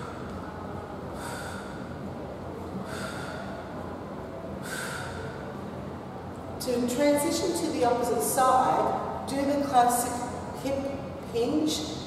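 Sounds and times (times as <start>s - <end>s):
steady low hum: 0.0s - 12.0s
woman's sharp breaths out: 1.2s - 1.9s, 2.9s - 3.6s, 4.6s - 5.3s.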